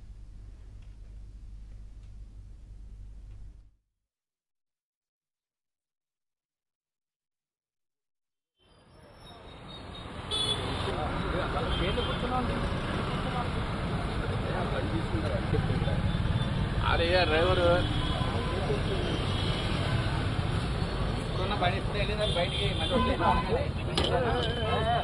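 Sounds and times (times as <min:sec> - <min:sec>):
road traffic rumble: 0:08.9 - 0:25.0.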